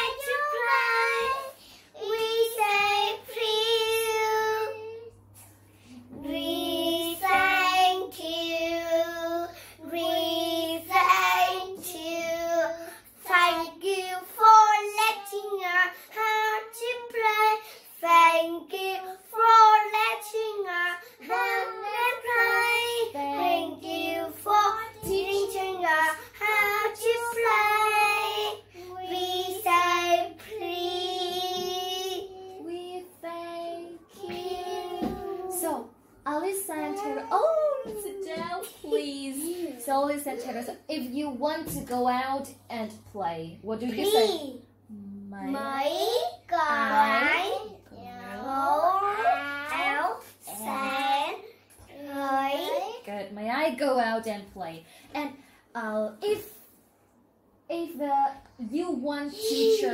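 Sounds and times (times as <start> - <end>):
girls singing children's song: 0.0 - 40.2, 45.5 - 52.2.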